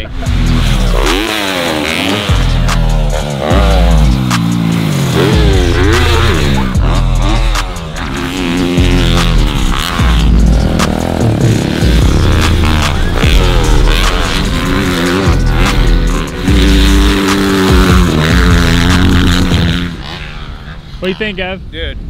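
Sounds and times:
bass-heavy electronic music: 0.0s - 21.4s
dirt bike engines revving: 0.0s - 22.0s.

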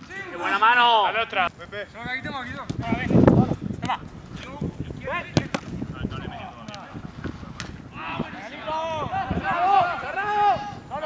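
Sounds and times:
football struck on artificial turf: 5.2s - 5.8s
players shouting: 7.9s - 11.0s.

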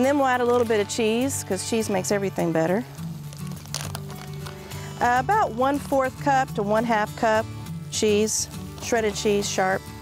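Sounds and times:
background music with low notes: 0.0s - 10.0s
plastic bag crinkling: 3.2s - 4.7s.

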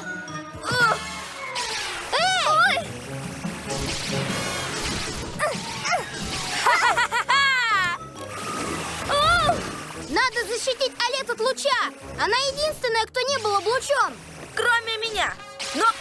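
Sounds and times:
cartoon background music: 0.0s - 16.0s.

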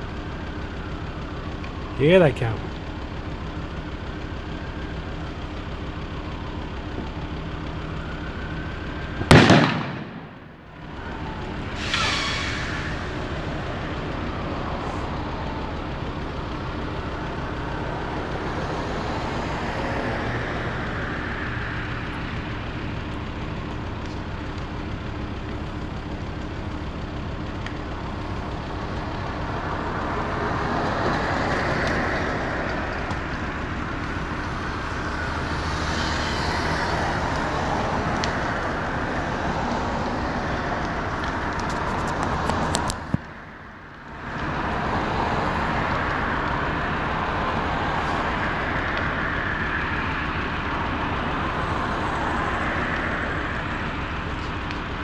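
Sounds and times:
car engine idling: 0.0s - 55.0s
passing road traffic: 0.0s - 55.0s
small pop: 9.3s - 10.3s
loud sharp bang: 9.3s - 10.6s.

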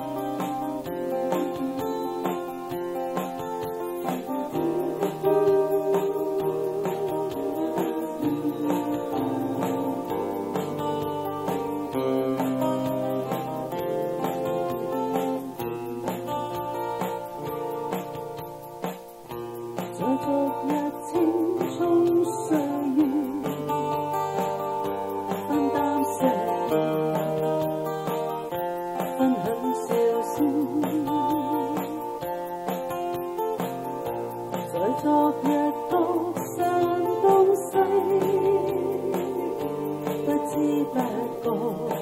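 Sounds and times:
acoustic-electric guitar plucked: 0.0s - 42.0s
woman singing: 1.1s - 3.1s, 4.0s - 11.0s, 19.9s - 24.2s, 25.4s - 27.1s, 29.0s - 32.3s, 34.6s - 42.0s.

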